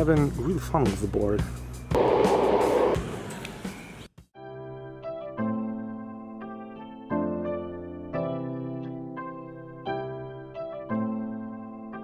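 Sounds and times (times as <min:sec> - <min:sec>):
electric skateboard rolling: 0:02.0 - 0:03.4.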